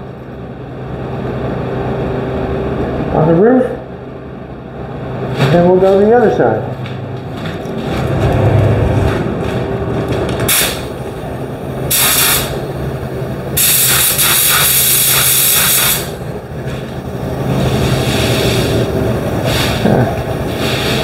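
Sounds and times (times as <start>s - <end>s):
steady low hum: 0.0s - 21.0s
paint spray gun hissing: 11.9s - 12.6s, 13.6s - 16.1s, 17.8s - 18.8s.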